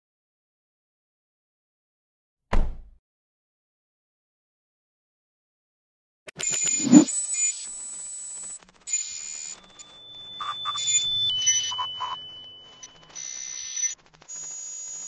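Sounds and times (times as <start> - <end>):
steady high electronic tone: 6.6 - 7.1
whooshing swell: 6.8 - 7.1.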